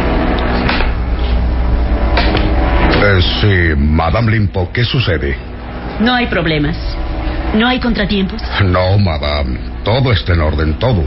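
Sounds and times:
airplane engines droning: 0.0 - 11.0.

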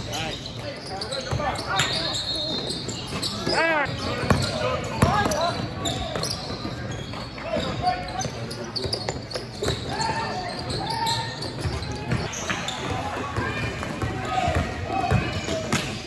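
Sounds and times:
basketball bouncing on court: 4.2 - 10.9, 11.5 - 15.9.

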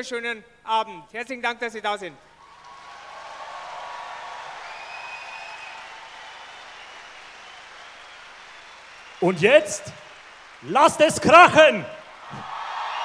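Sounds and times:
large crowd applauding: 2.4 - 13.0.

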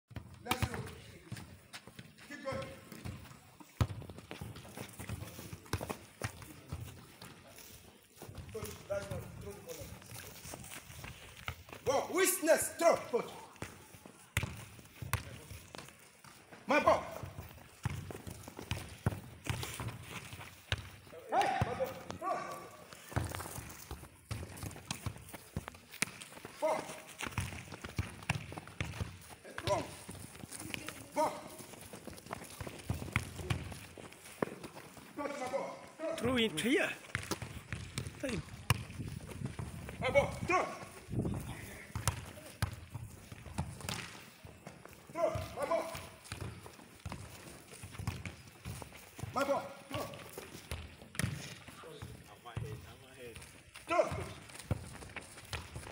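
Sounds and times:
football thrown and caught: 0.1 - 1.4, 16.8 - 29.9, 37.1 - 44.2, 49.3 - 52.0
footsteps running on grass: 1.3 - 12.4, 13.0 - 51.5.

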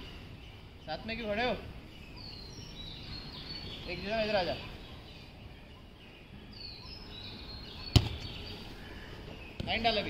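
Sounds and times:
faint bird chirps: 0.0 - 10.0
football being kicked: 7.9 - 8.3.

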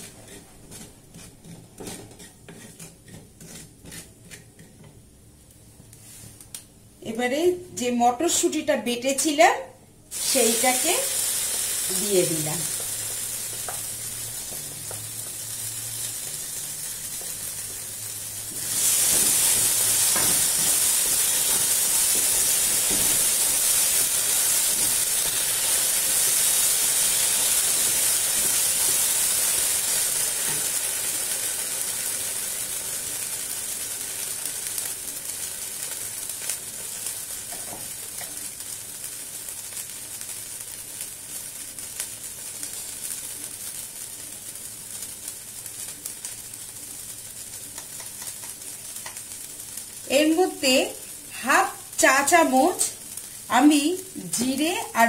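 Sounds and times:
paste sizzling in oil: 0.0 - 4.7, 10.1 - 55.0
wooden spatula stirring: 0.0 - 4.8.

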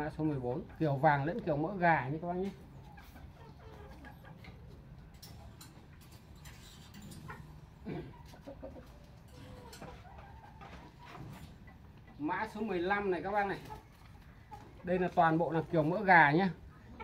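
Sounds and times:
chickens clucking: 0.0 - 17.0.

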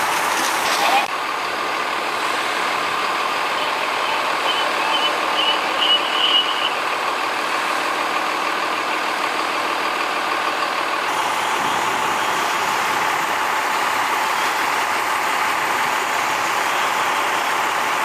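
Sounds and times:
diesel engine running: 0.0 - 18.0
short high beeps: 3.6 - 6.8.

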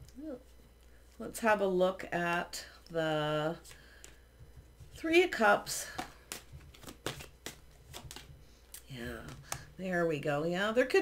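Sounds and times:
cards clicking and sliding: 5.9 - 8.3.

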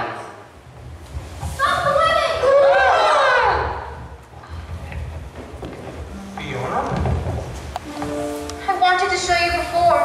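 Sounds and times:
musical accompaniment: 6.0 - 10.0.

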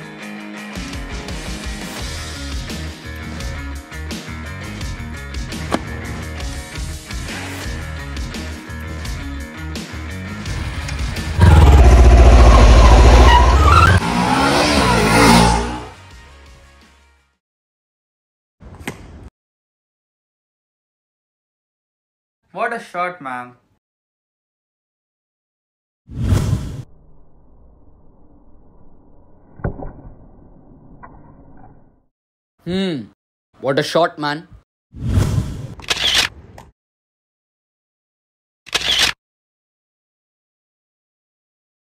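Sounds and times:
motorcycle engine accelerating: 11.2 - 15.9.

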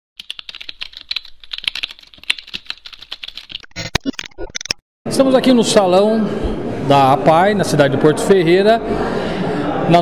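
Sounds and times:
buzzing digital glitch: 3.6 - 4.8.

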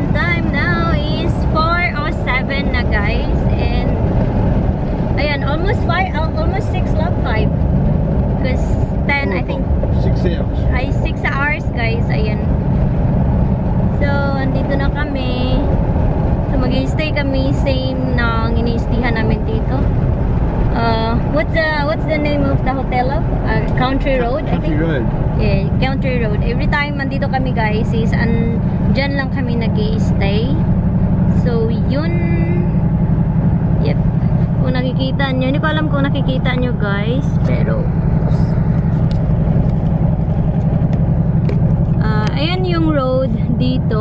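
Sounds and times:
woman talking: 0.0 - 4.2, 5.2 - 7.5, 8.4 - 9.7, 10.6 - 12.6, 14.0 - 15.8, 16.5 - 19.9, 20.7 - 24.8, 25.4 - 30.7, 31.3 - 32.8, 33.8 - 38.4, 42.0 - 44.0
car cabin road rumble: 0.0 - 44.0.

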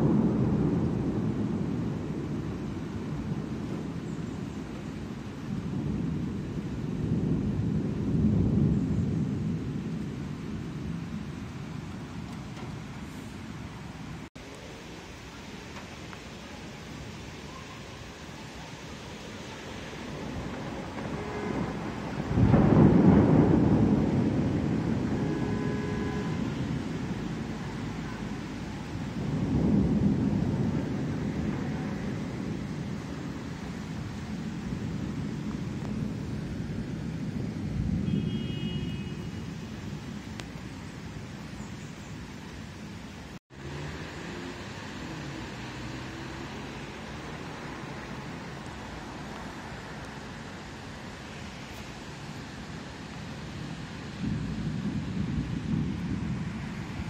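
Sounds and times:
thunder rumbling: 0.0 - 57.0
loud thunder clap: 20.0 - 38.3, 54.2 - 57.0.

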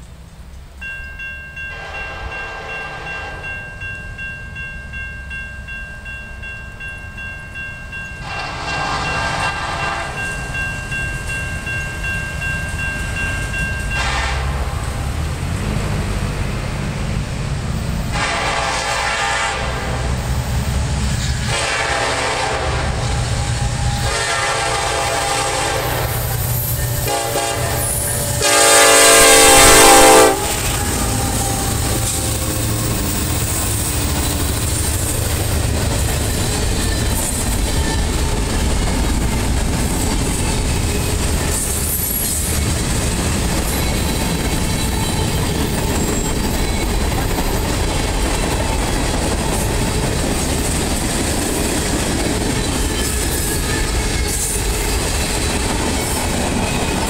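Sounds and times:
train rumble: 0.0 - 57.0
locomotive air horn blasts: 1.7 - 3.6, 8.2 - 10.3, 13.9 - 14.8, 18.1 - 20.3, 21.4 - 32.6.

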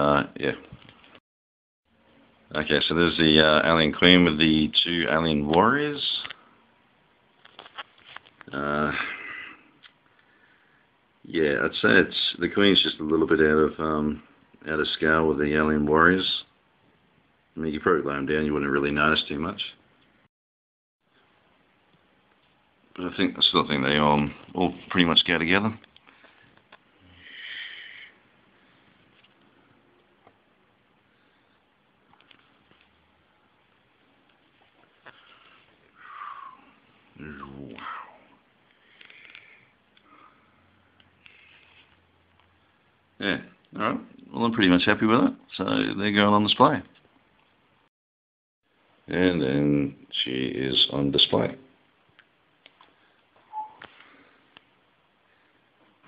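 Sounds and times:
person breathing close to microphone: 26.0 - 29.0, 37.8 - 41.9
short squeak: 53.4 - 53.8.

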